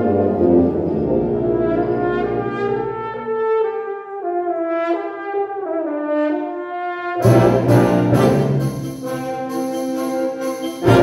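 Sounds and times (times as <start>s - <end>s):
low brass: 0.0s - 11.0s
wind ensemble playing: 0.0s - 11.0s.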